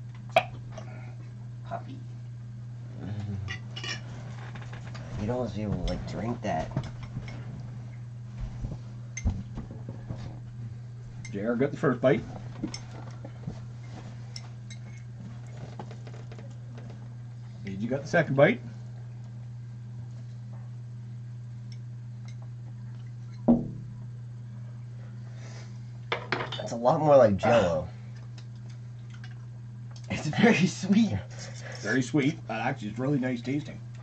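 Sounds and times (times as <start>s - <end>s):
steady low hum: 0.0s - 34.0s
soft knocks: 23.5s - 23.9s.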